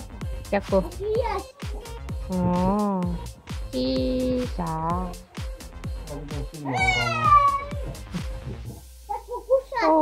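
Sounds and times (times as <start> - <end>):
music with quick beat: 0.0 - 10.0
cat meowing: 6.6 - 8.0.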